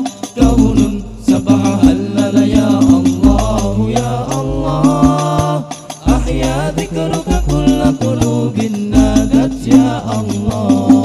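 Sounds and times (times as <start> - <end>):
frame drums beating: 0.0 - 11.0
group chanting: 0.0 - 11.0.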